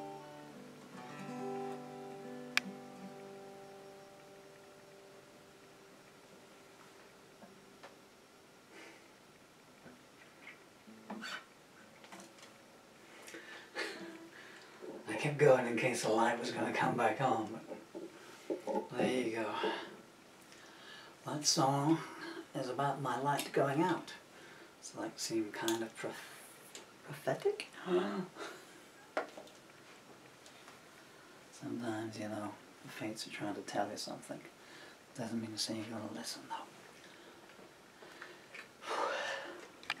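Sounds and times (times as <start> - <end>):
guitar handling clicks and rustles: 10.4 - 12.6
man exhaling: 38.8 - 39.6.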